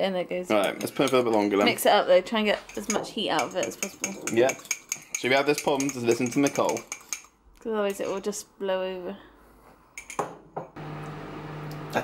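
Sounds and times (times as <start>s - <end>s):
microwave oven humming: 10.8s - 12.0s.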